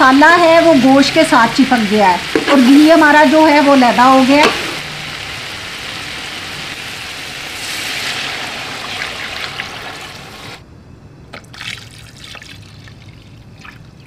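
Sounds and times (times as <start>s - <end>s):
water pouring into a pot: 6.8s - 10.6s.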